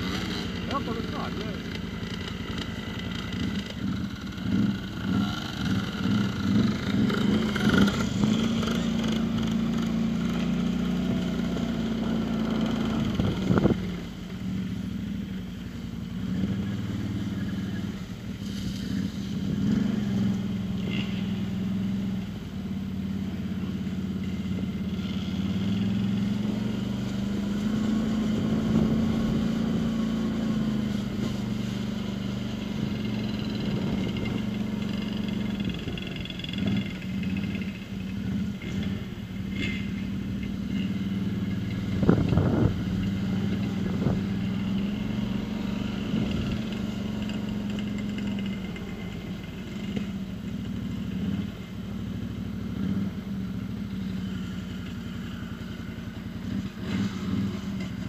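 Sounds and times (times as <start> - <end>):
quad engine running at low revs: 0.0 - 58.0.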